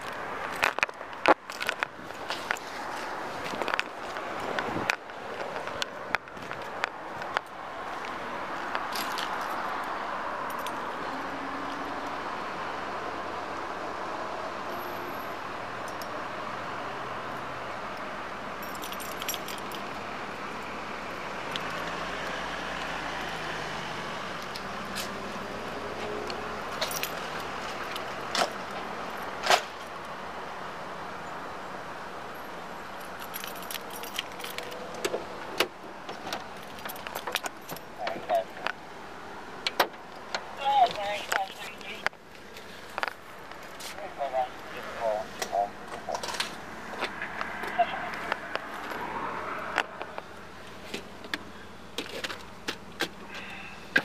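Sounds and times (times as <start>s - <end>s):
street and traffic noise: 0.0s - 54.0s
metal jingling like keys: 18.6s - 19.9s, 33.0s - 34.9s.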